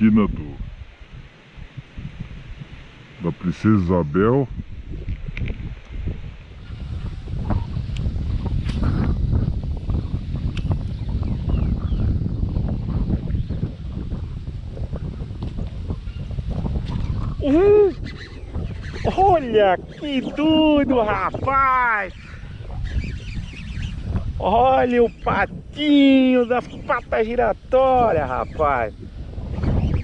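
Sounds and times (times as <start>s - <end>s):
strong wind buffeting microphone: 0.0s - 30.0s.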